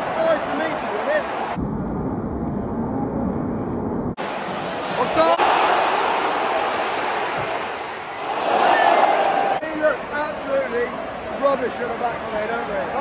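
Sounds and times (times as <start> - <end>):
man talking: 0.0 - 1.4, 9.6 - 13.0
stadium crowd roar: 0.0 - 1.6, 4.1 - 13.0.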